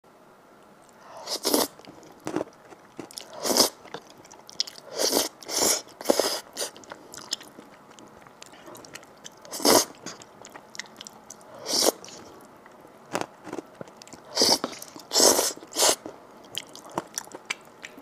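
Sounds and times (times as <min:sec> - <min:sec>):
soft wet chewing: 0:00.7 - 0:18.0
person slurping noodles: 0:01.2 - 0:01.7, 0:03.2 - 0:03.8, 0:04.9 - 0:06.8, 0:09.5 - 0:10.2, 0:11.6 - 0:12.3, 0:14.3 - 0:16.1.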